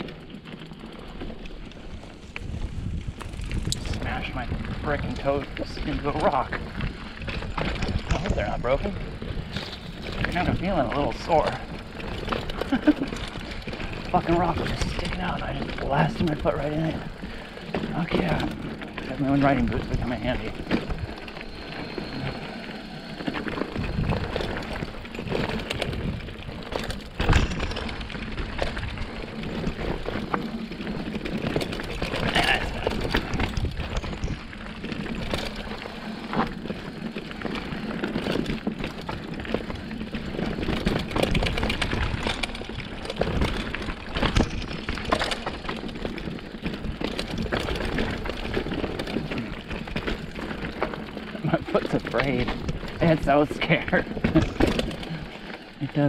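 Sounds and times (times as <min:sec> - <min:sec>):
bike knocks and rattles: 0:00.0 - 0:22.2, 0:23.2 - 0:56.0
bike tyre and trail noise: 0:00.0 - 0:56.0.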